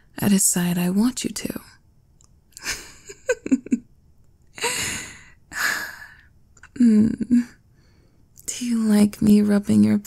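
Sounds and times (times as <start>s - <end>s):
woman sighing breathily: 4.6s - 7.6s.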